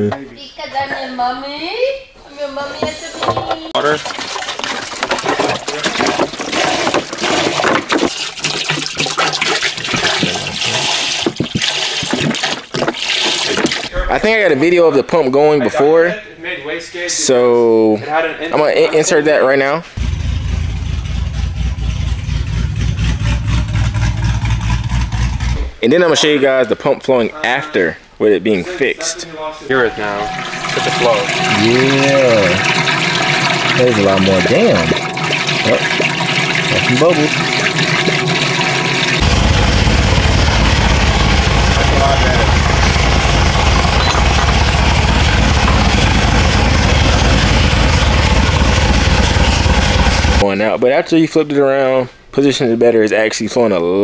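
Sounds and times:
car engine idling: 20.0 - 25.6, 35.4 - 50.4.

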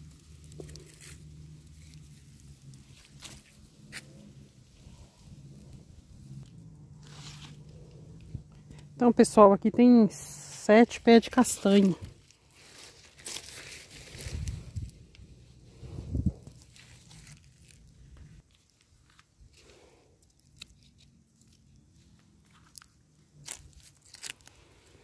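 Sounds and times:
dry leaves crunching underfoot: 0.0 - 6.1, 6.9 - 7.9, 11.2 - 19.4, 20.4 - 25.0.

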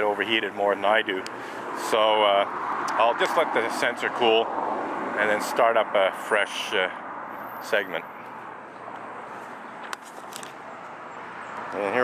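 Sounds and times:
distant road traffic hum: 0.0 - 12.0.

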